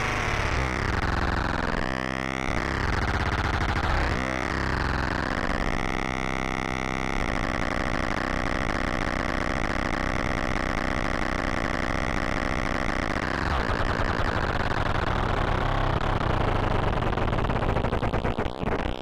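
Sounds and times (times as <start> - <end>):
synthesizer oscillator droning: 0.0 - 18.1.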